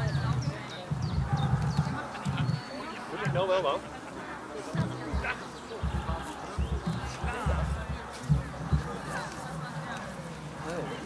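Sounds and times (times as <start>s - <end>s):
running footfalls on grass: 0.0s - 3.7s, 4.6s - 11.0s.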